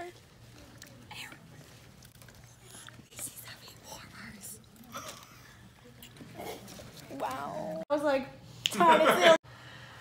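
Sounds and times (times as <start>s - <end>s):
people whispering: 0.5s - 6.2s.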